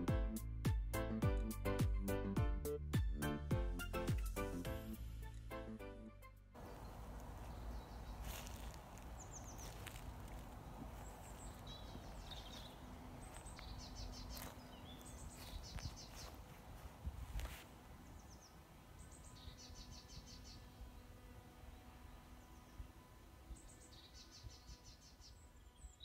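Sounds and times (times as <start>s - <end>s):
songbirds trilling: 6.6s - 26.0s.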